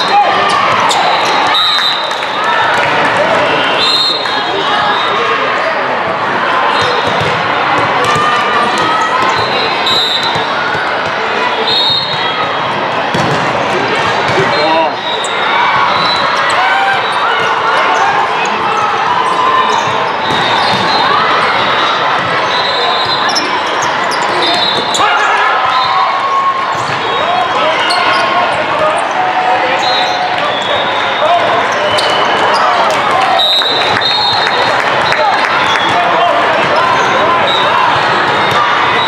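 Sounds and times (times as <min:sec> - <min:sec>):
players and spectators voices: 0:00.0 - 0:39.0
sneakers squeaking on court: 0:06.7 - 0:10.5, 0:14.3 - 0:25.1, 0:26.7 - 0:29.2
volleyball being struck: 0:13.1 - 0:13.6.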